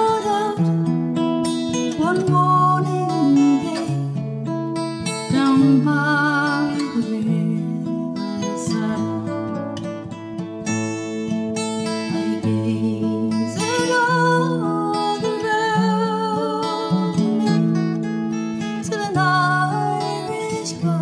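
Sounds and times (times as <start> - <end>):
woman singing with vibrato: 0.0 - 0.7, 1.8 - 4.1, 5.1 - 9.9, 12.0 - 17.9, 18.6 - 21.0
strummed acoustic guitar: 0.0 - 21.0.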